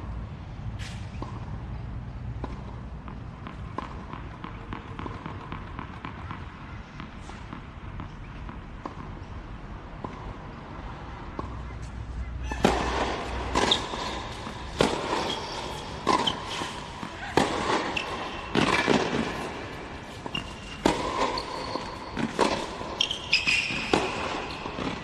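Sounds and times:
tennis ball struck by rackets: 0:02.4 - 0:09.4, 0:11.2 - 0:25.0
shoes squeaking: 0:11.5 - 0:25.0.

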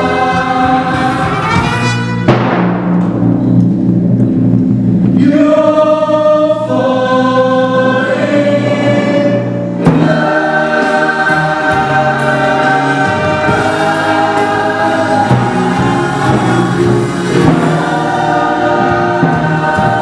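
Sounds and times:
chorus singing held notes: 0:00.0 - 0:02.3, 0:05.1 - 0:20.0.

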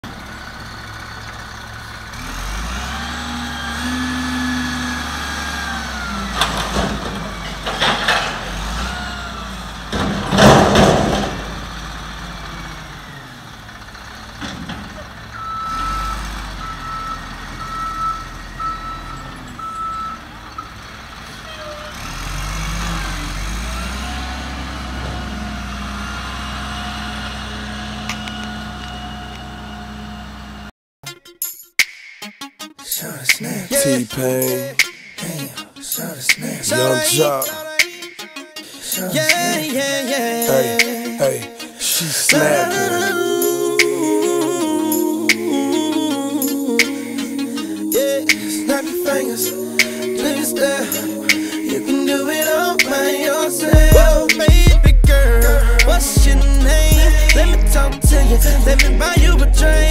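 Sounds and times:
diesel engine revving: 0:00.0 - 0:30.7, 0:40.3 - 0:59.9
reversing beeps: 0:05.9 - 0:06.5, 0:15.3 - 0:20.7
loud bangs: 0:09.9 - 0:11.9.

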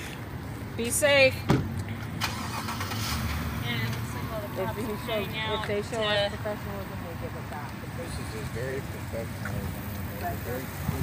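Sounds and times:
engine starting and idling: 0:02.1 - 0:04.8.

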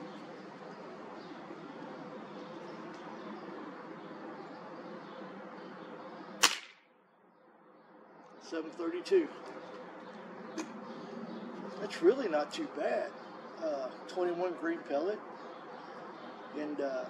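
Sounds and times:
air rifle shot crack: 0:06.4 - 0:06.9.

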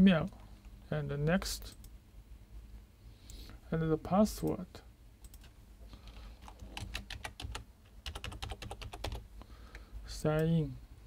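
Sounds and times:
keyboard typing: 0:06.1 - 0:09.2.

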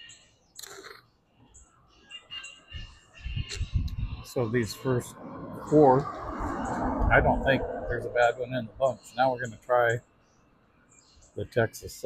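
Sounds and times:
small birds chirping: 0:00.0 - 0:07.4, 0:08.1 - 0:12.0
low rumble: 0:03.7 - 0:08.9.

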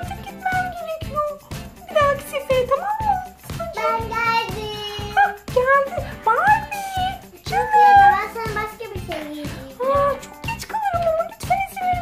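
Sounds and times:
background music with steady beat: 0:00.0 - 0:12.0
children's voices: 0:03.1 - 0:05.5, 0:06.7 - 0:10.2.

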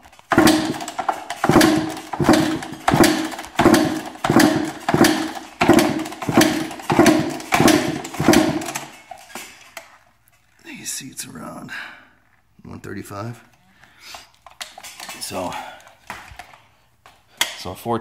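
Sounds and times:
motorcycle engine being kick-started: 0:00.0 - 0:09.4.

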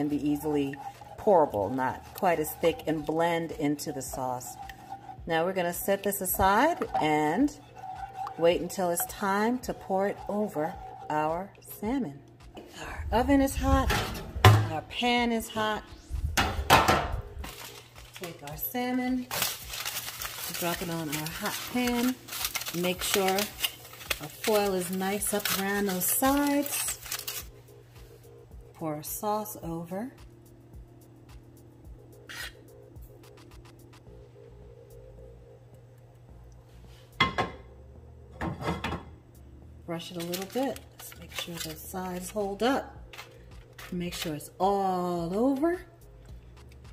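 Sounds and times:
rasping rub on pan: 0:00.0 - 0:11.5
scraping on foil-lined pan: 0:00.0 - 0:11.5, 0:19.2 - 0:27.5, 0:40.1 - 0:44.4.

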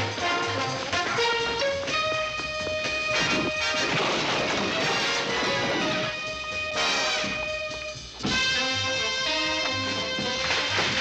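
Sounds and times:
brassy background music: 0:00.0 - 0:11.0.

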